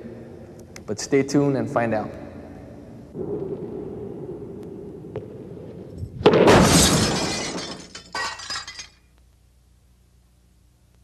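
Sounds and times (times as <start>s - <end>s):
crash: 5.9s - 9.0s
glass shattering: 6.4s - 9.0s.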